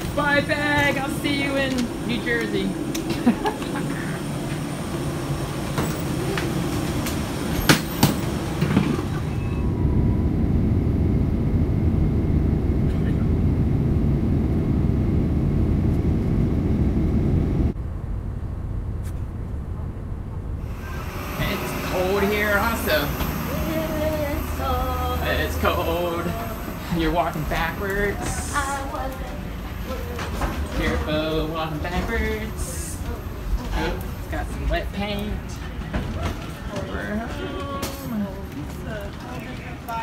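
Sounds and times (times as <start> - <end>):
jet cabin rumble: 0.0 - 40.0.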